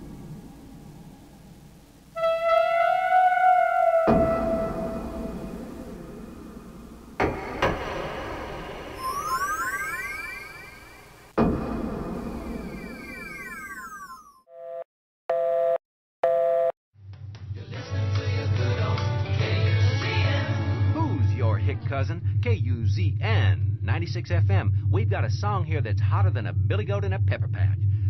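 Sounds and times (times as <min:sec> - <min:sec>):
music: 0:02.2 - 0:06.3, 0:17.1 - 0:21.6
deep hits: 0:04.1 - 0:09.0, 0:11.4 - 0:12.7
two-tone electronic beeps: 0:09.0 - 0:11.0, 0:12.7 - 0:14.4
synthesized tones gliding: 0:09.0 - 0:11.3.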